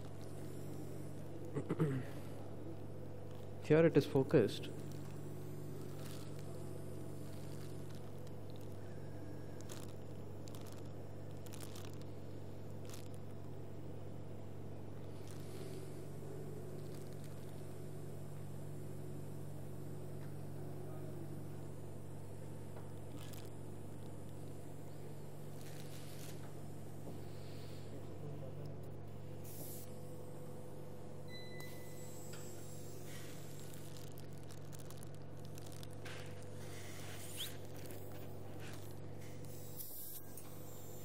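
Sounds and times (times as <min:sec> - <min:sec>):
low machine hum: 0:00.0 - 0:41.0
faint clicks and scrapes: 0:04.8 - 0:13.5, 0:15.0 - 0:16.0, 0:16.7 - 0:17.8, 0:22.7 - 0:24.6, 0:25.5 - 0:28.9, 0:32.3 - 0:40.7.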